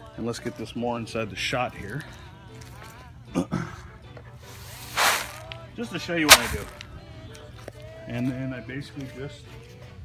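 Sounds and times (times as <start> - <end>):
clay pebbles rustling: 4.6 - 5.6, 6.3 - 6.9.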